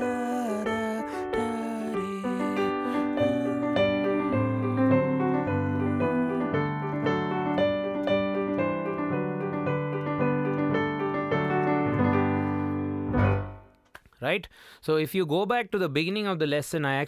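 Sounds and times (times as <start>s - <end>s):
digital piano melody: 0.0s - 13.8s
man talking: 14.1s - 17.0s.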